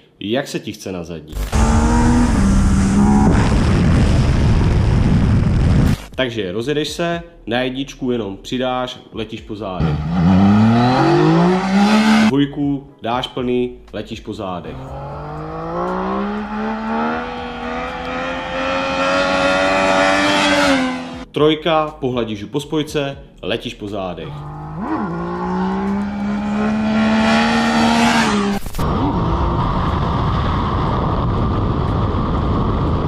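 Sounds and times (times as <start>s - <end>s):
motorcycle engine accelerating hard: 1.4s - 5.9s, 9.8s - 12.3s, 14.8s - 21.2s, 24.4s - 33.0s
wind rush on microphone: 2.4s - 6.0s, 28.8s - 33.0s.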